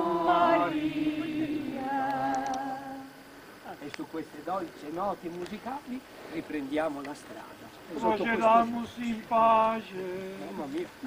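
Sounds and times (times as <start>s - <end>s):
group singing a hymn a cappella: 0.0s - 3.5s, 8.0s - 10.7s.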